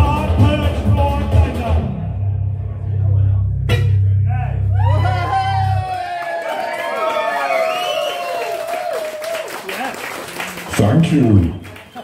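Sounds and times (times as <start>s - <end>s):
held deep bass note: 0.0s - 5.9s.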